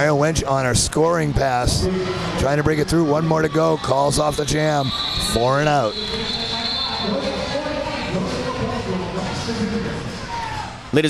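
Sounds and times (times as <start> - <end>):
murmur of many voices: 0.0 - 11.0.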